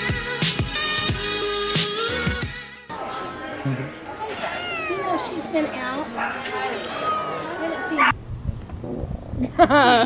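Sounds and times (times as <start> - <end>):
people's voices in background: 2.9 - 8.1.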